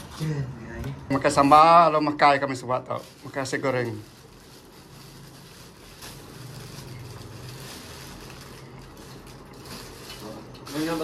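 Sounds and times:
plastic bags crackling: 0.0s - 11.0s.

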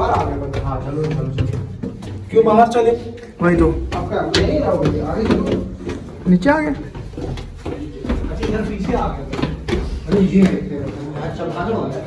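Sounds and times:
overlapping talk of people: 0.0s - 12.0s.

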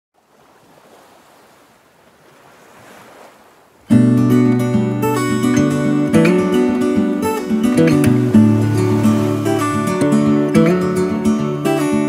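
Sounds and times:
waves washing: 0.2s - 12.0s
strummed acoustic guitar music: 3.9s - 12.0s.

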